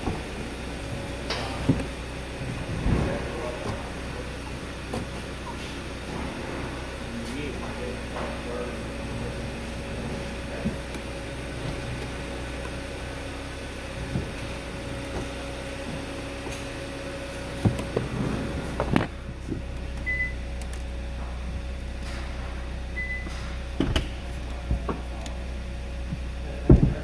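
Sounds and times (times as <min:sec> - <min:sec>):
car engine idling: 0:00.0 - 0:27.0.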